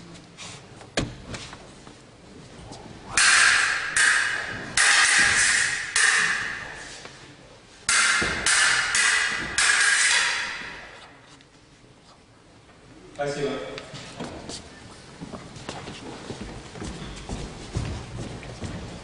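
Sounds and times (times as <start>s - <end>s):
swords clashing: 3.1s - 7.0s, 7.9s - 11.2s.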